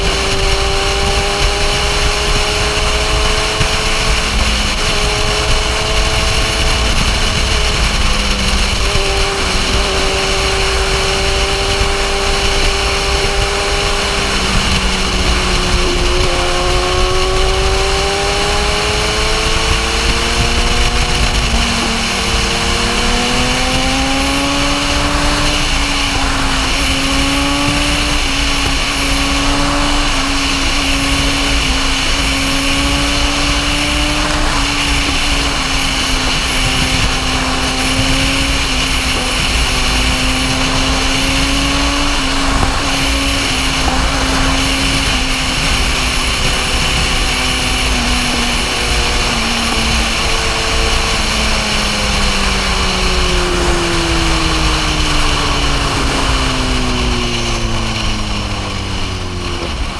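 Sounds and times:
motorcycle engine: 0:00.0 - 0:59.9
wind rush on microphone: 0:00.0 - 0:59.9.

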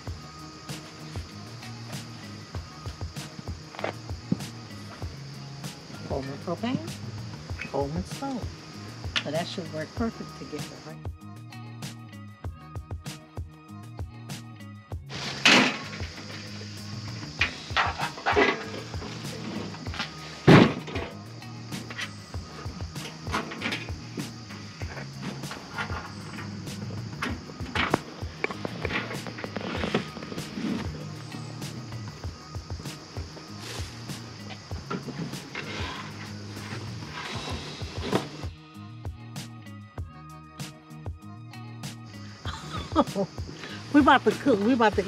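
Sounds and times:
background music: 0:00.0 - 0:45.0
cooking gear knocking and clattering: 0:17.3 - 0:19.2, 0:23.0 - 0:24.0
loud thunks: 0:17.4 - 0:21.1, 0:27.2 - 0:31.0, 0:37.4 - 0:38.4.

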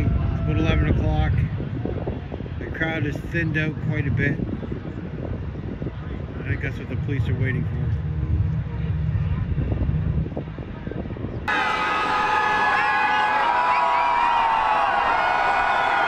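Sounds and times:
faint street noise: 0:00.0 - 0:16.0
wind rumbling on microphone: 0:00.0 - 0:16.0.

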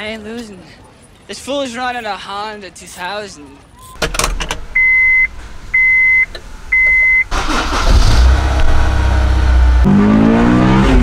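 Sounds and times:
electronic dashboard beeps: 0:04.8 - 0:07.8
car engine starting and revving: 0:06.4 - 0:11.0.

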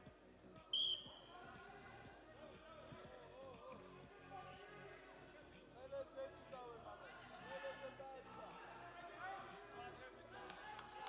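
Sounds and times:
referee's whistle blast: 0:00.8 - 0:01.3.

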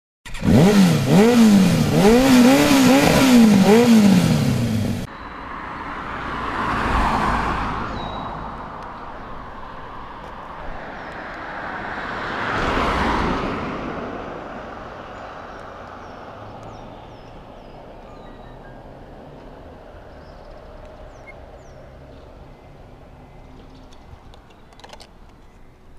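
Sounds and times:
two-stroke engine revving: 0:00.3 - 0:05.1
vehicles passing: 0:00.3 - 0:25.9
faint bird chirps: 0:16.6 - 0:19.0, 0:20.2 - 0:24.6.

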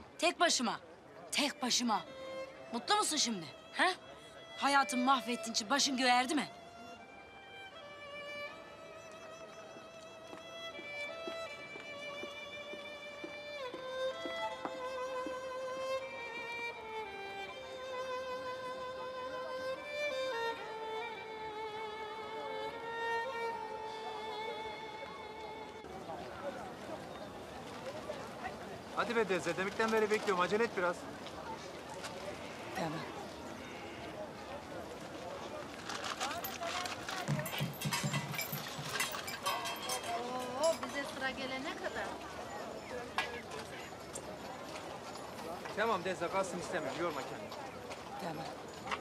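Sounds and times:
slow violin melody: 0:01.3 - 0:25.9
paper bag crackling: 0:35.6 - 0:37.5.

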